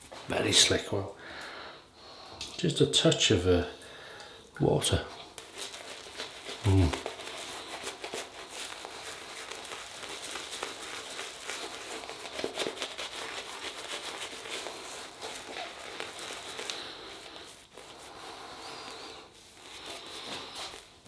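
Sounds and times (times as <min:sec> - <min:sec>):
shaving brush scratching stubble: 0:05.3 - 0:21.0.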